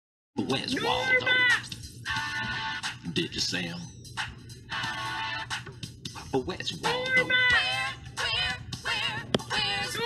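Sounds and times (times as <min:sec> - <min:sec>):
synthetic processed singing voice: 0:00.4 - 0:03.9, 0:06.2 - 0:10.0.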